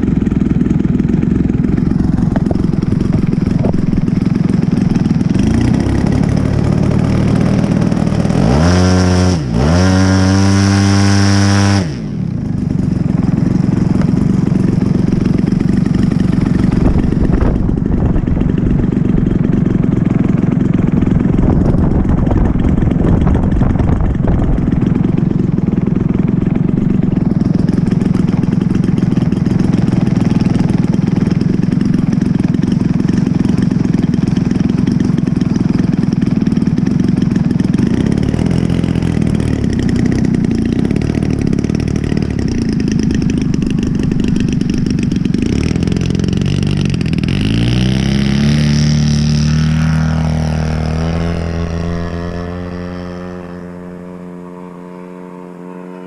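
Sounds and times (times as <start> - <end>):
model airplane engine: 0.0 - 56.0.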